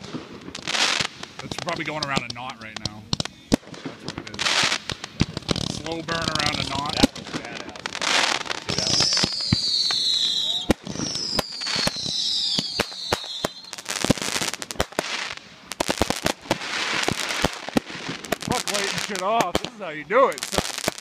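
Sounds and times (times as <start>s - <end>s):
fireworks bangs and crackling: 0.0s - 21.0s
fireworks whistles falling in pitch: 6.4s - 19.7s.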